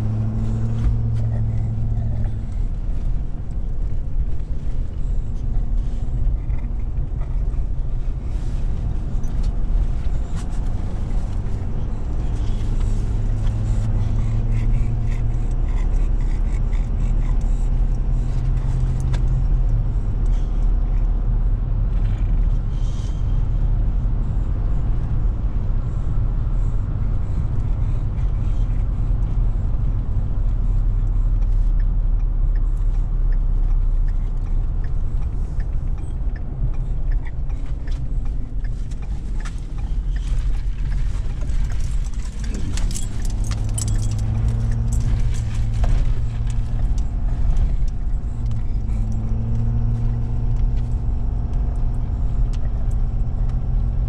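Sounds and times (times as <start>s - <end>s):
road noise: 0.0s - 54.0s
truck engine drone: 0.0s - 54.0s
metallic jangling: 41.9s - 45.6s.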